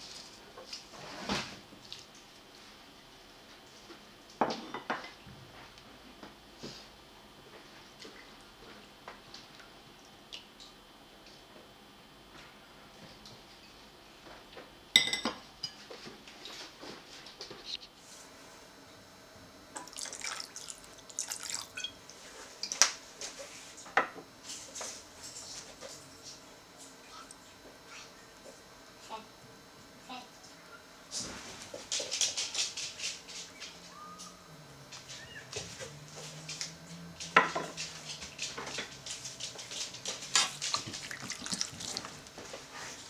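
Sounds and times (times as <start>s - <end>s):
sauce dripping and splashing: 40.6s - 42.3s.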